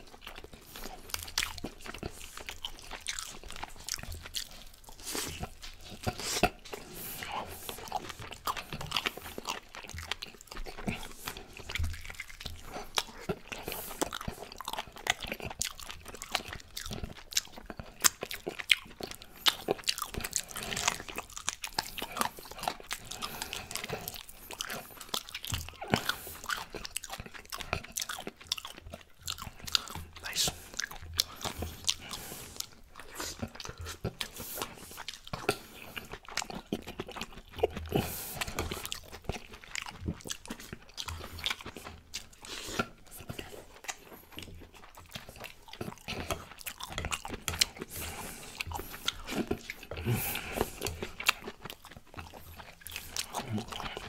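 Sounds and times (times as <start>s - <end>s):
open-mouth chewing and lip smacking: 0.0s - 54.0s.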